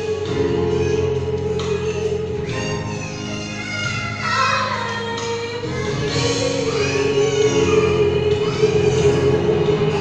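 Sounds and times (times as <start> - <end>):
woman singing into microphone: 4.3 - 10.0.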